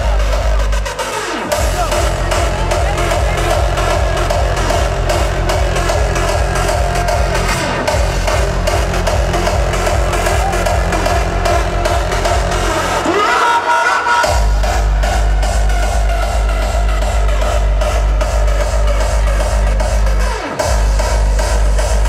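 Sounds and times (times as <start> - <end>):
hardstyle dance music: 0.0 - 22.0
heavy kick drum: 1.5 - 13.0, 14.3 - 22.0.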